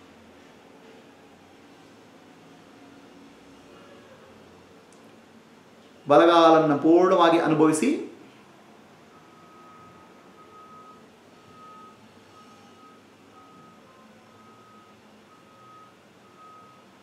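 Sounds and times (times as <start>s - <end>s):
faint electronic beeping: 9.0s - 17.0s.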